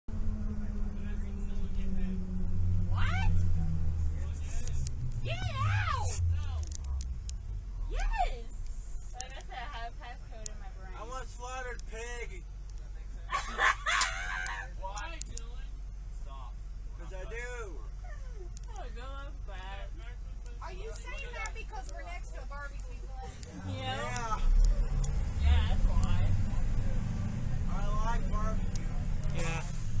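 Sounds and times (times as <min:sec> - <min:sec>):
bus rumbling: 0:00.0 - 0:30.0
voices talking in background: 0:00.2 - 0:30.0.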